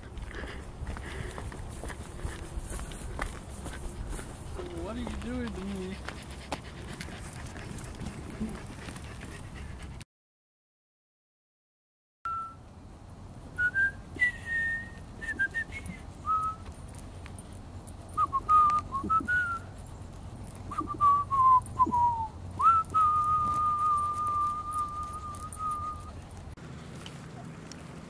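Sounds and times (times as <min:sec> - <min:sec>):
person whistling: 0:12.3 - 0:12.6, 0:13.6 - 0:16.6, 0:18.2 - 0:19.7, 0:20.7 - 0:26.2.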